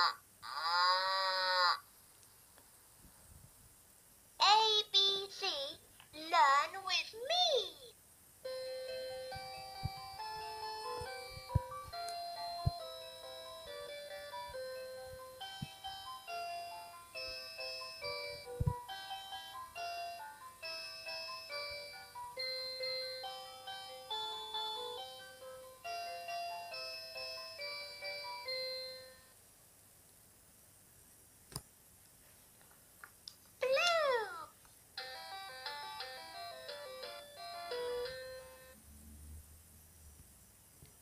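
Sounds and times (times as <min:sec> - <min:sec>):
toy playing chiming melody: 0:08.4 - 0:29.3, 0:35.0 - 0:38.8.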